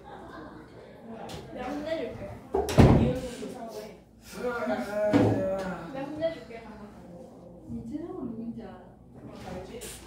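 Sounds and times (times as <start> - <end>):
students chatting: 0.0 - 10.0.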